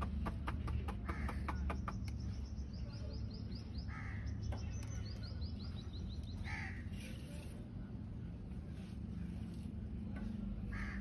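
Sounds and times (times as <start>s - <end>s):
loud bird calls: 0.0s - 7.2s, 10.6s - 11.0s
birds chirping: 0.0s - 8.4s.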